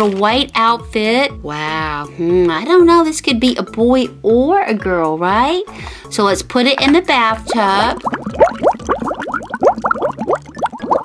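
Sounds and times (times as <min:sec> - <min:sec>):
water pouring and gurgling: 0:05.7 - 0:11.0.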